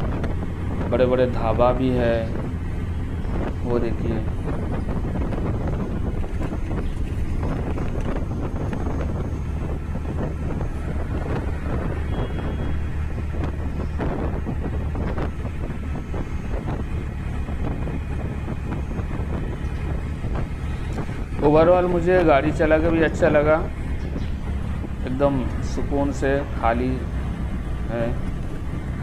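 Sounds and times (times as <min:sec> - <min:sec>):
vehicle engine and tyres rumbling: 0:00.0 - 0:29.0
wind rushing over microphone: 0:00.0 - 0:29.0.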